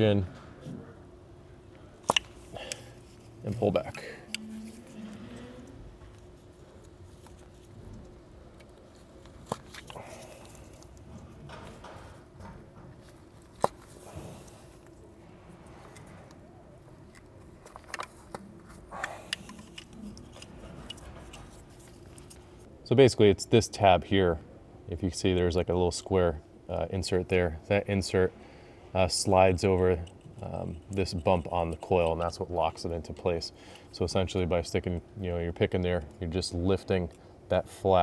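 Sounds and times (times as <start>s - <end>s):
faint steady hum: 0.0s - 38.0s.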